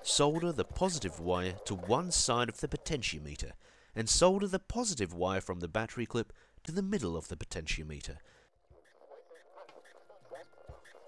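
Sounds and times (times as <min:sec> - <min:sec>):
quiet background music: 0:00.0 - 0:03.5, 0:08.0 - 0:11.0
voice: 0:00.0 - 0:08.2.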